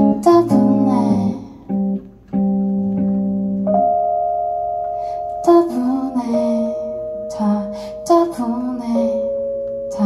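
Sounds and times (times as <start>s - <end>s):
keyboard piano chords: 0.0s - 10.0s.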